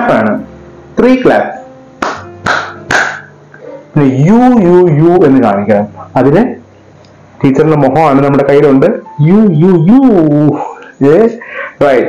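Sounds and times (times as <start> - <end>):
soft background music: 0.0 - 12.0
hand claps: 2.0 - 3.3.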